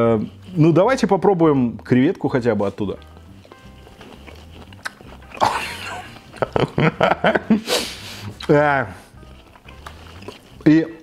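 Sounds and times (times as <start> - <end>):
chewing clicks: 2.8 - 6.7, 9.2 - 10.7
person biting food: 3.0 - 6.6.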